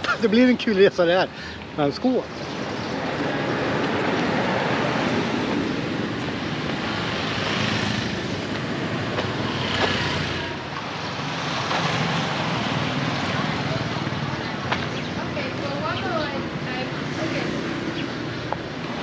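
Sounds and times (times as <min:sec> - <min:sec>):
passing vehicles: 0:00.0 - 0:19.0.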